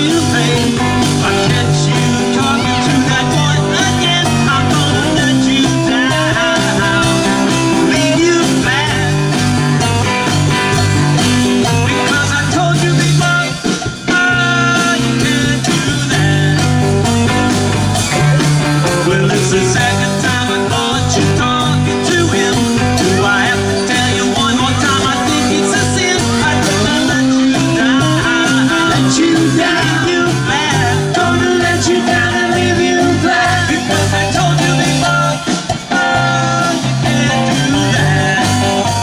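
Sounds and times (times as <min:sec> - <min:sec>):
bass guitar: 0:00.0 - 0:39.0
drums: 0:00.0 - 0:39.0
electric guitars: 0:00.0 - 0:39.0.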